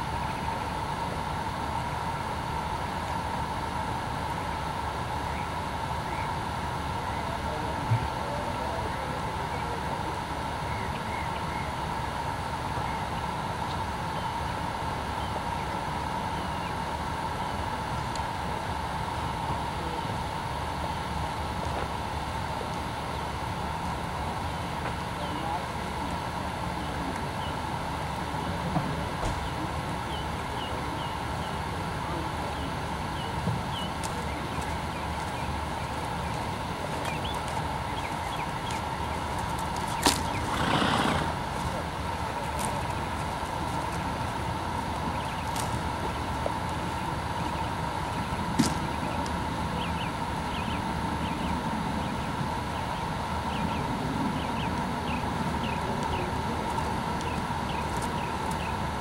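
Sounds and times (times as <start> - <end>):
faint distant voices: 0.0 - 59.0
outdoor background noise: 0.0 - 59.0
small birds chirping: 24.6 - 58.9.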